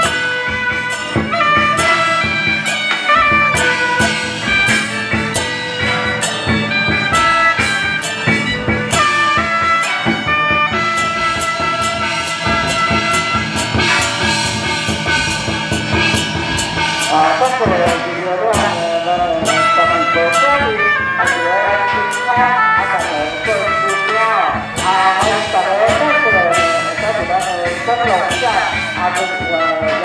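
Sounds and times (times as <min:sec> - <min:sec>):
loud brass and drum music: 0:00.0 - 0:30.0.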